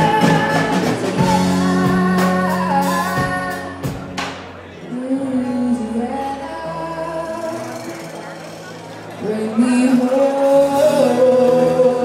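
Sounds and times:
bass: 0.0 - 12.0
quiet guitar: 0.0 - 12.0.

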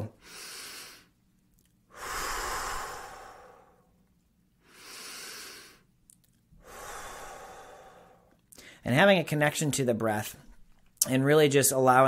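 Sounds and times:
man breathing deeply: 0.0 - 1.2, 1.9 - 4.0, 4.6 - 5.9, 6.6 - 8.8.

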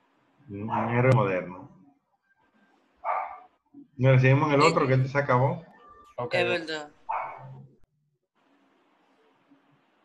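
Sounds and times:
dog barking: 0.7 - 1.0, 3.0 - 3.6, 7.1 - 7.6.

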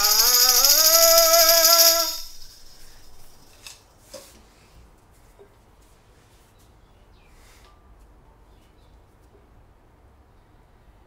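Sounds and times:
man singing held note: 0.0 - 2.8
tambourine shaking: 0.0 - 3.7.

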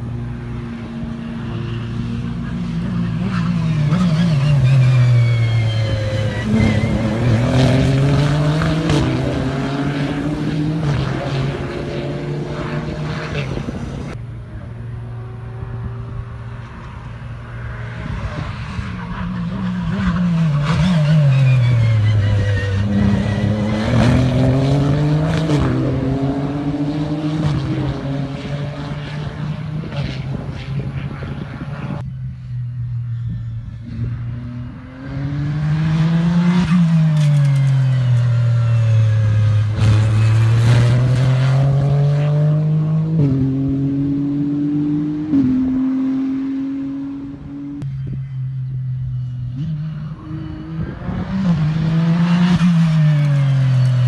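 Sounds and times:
race car passing at speed: 0.0 - 32.0, 32.9 - 47.8, 49.2 - 54.0.

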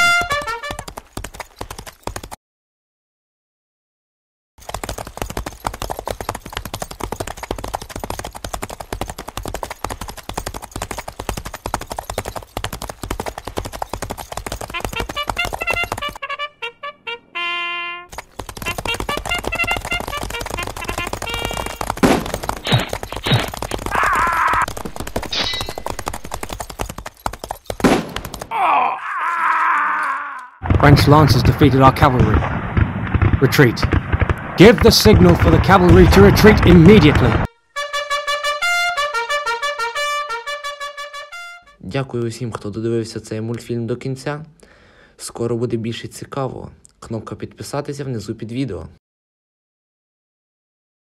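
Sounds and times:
rapid gunfire: 4.6 - 16.2, 18.1 - 28.5, 30.6 - 37.5
men shouting: 23.9 - 24.7.

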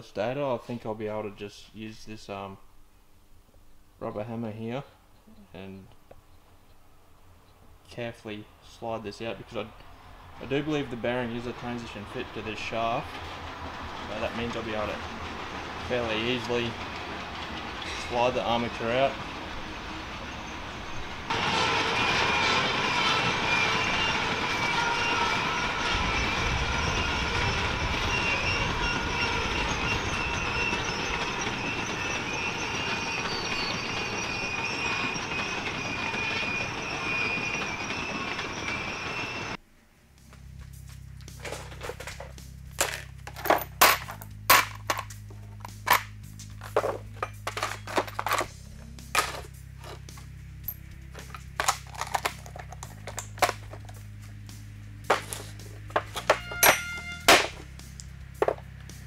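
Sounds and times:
freight train rumbling past: 7.7 - 39.6, 43.6 - 59.0
train wheels whining: 9.1 - 39.6, 45.6 - 59.0
music with bass and drums: 40.1 - 59.0.

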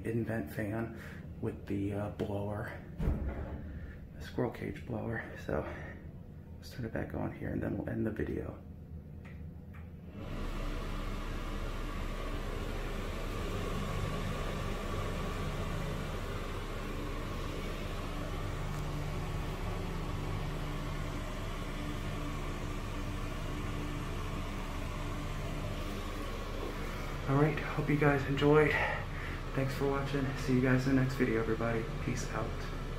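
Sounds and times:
exhaust fan rushing air: 0.0 - 32.9
fan motor hum: 0.0 - 32.9.

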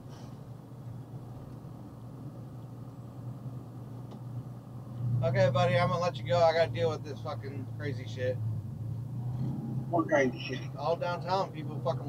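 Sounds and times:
truck engine and road hum: 0.0 - 12.0.

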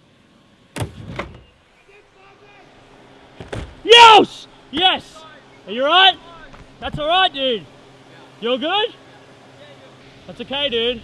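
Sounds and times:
distant voices calling out: 1.4 - 11.0.

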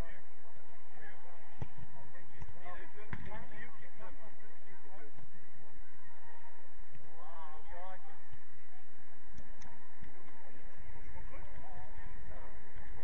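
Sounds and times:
ball kicks: 1.5 - 3.4.

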